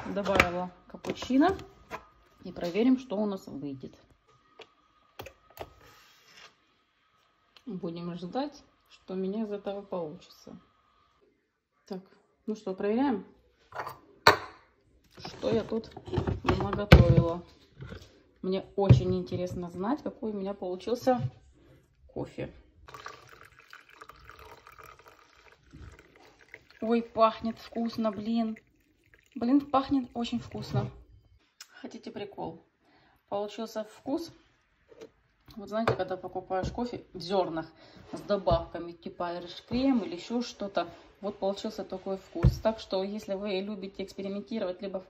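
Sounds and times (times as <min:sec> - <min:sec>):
coffee pouring into mug: 0:22.8 - 0:31.1.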